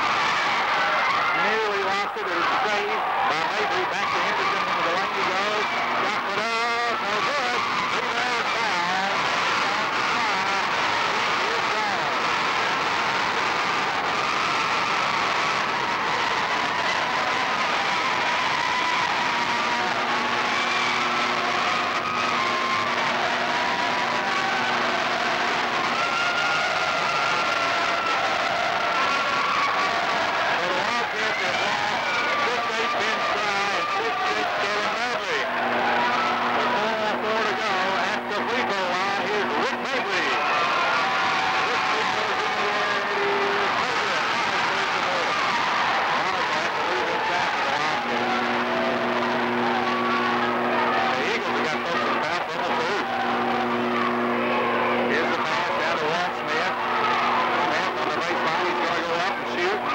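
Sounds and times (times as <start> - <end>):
crowd shouting and cheering: 0.0 - 59.9.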